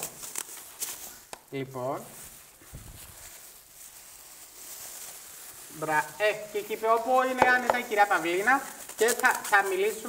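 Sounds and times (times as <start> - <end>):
plastic gloves rustling: 0.0 - 10.0.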